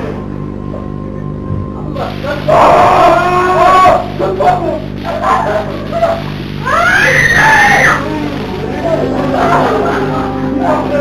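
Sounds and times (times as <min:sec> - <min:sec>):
steady low drone: 0:00.0 - 0:11.0
high-pitched wailing cries: 0:02.5 - 0:04.2, 0:05.1 - 0:08.3.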